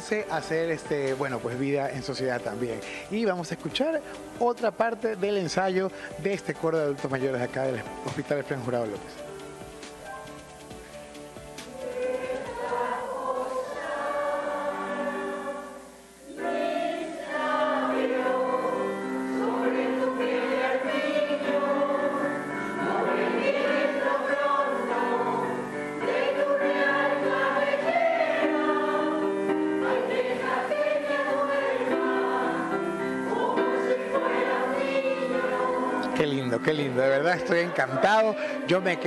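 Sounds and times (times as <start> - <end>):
mixed choir singing: 11.6 - 39.0.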